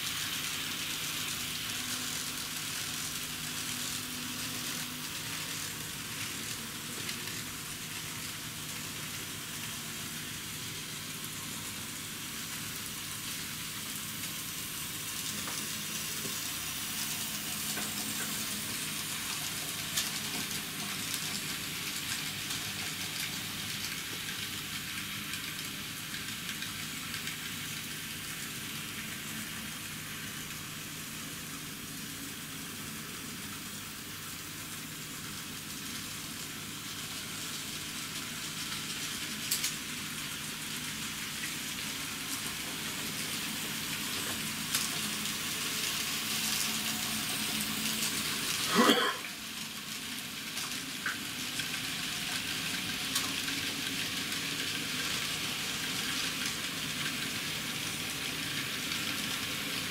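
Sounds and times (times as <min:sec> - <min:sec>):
model train wheels rolling on track: 0:00.0 - 0:30.7
faint motor hum: 0:00.0 - 0:59.9.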